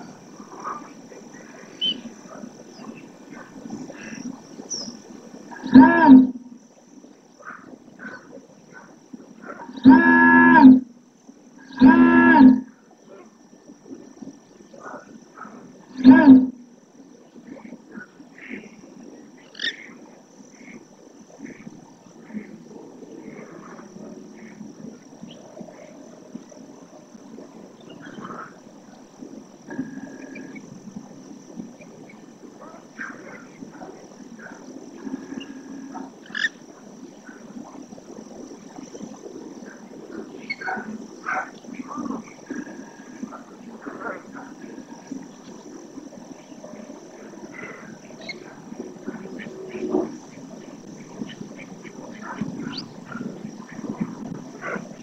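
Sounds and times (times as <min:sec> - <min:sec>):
loud drawn-out animal calls: 0:05.5 - 0:06.4, 0:09.4 - 0:10.9, 0:11.6 - 0:12.7, 0:15.9 - 0:16.6, 0:34.4 - 0:36.6.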